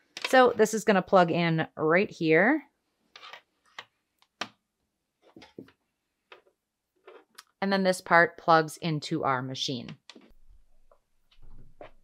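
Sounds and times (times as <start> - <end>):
cord rustling: 3.0 - 4.6, 5.2 - 7.4.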